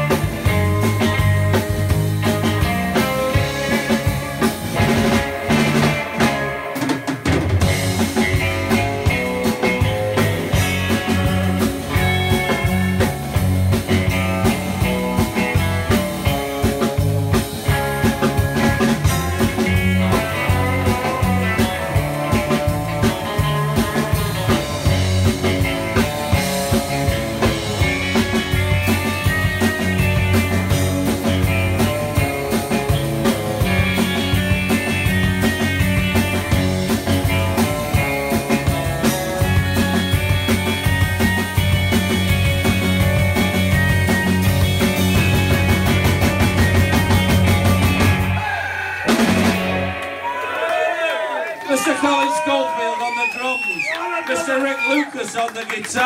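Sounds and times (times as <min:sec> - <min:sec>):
drum kit: 0:00.0 - 0:50.4
bass guitar: 0:00.0 - 0:51.2
electric guitars: 0:00.0 - 0:55.2.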